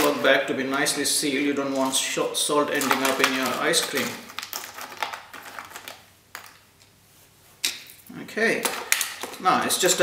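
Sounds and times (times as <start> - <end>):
ice chunks clicking and crunching: 2.8 - 6.6.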